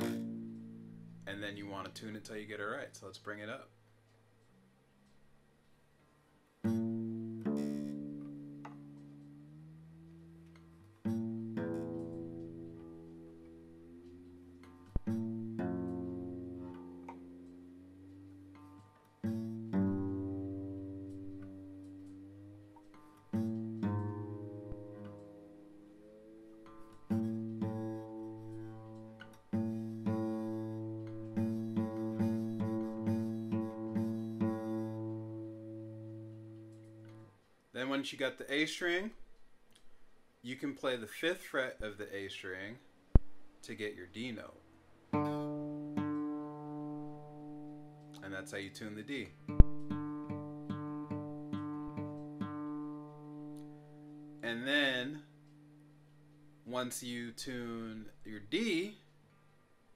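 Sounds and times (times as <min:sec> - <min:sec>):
acoustic guitar notes plucked: 0:00.0 - 0:03.6, 0:06.6 - 0:37.4, 0:43.2 - 0:59.1.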